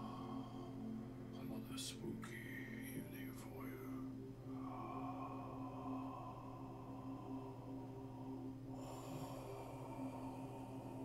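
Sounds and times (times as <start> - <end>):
low steady drone: 0.0 - 11.0.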